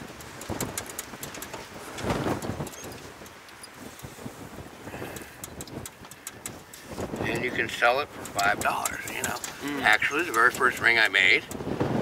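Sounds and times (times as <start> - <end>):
wire clicking as it's bent: 0.0 - 3.8, 5.1 - 11.7.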